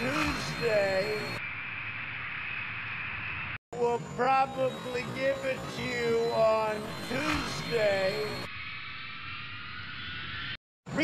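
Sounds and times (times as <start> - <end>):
man's voice: 0.0 - 1.4, 3.8 - 8.5
jet aircraft engine whine: 0.0 - 3.6, 4.5 - 10.6.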